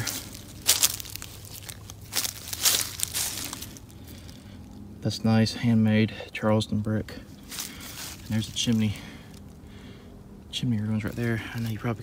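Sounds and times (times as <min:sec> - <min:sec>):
dry leaves crunching underfoot: 0:00.0 - 0:04.9, 0:07.3 - 0:09.6, 0:10.8 - 0:12.0.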